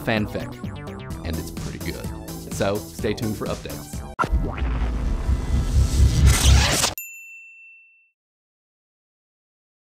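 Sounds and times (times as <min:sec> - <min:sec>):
logo theme music with bass: 0:00.2 - 0:07.0
ringing ding: 0:07.0 - 0:08.2.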